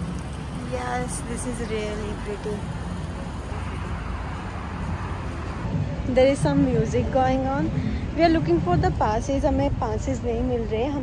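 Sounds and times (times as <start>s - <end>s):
road traffic rumble and hiss: 0.0s - 11.0s.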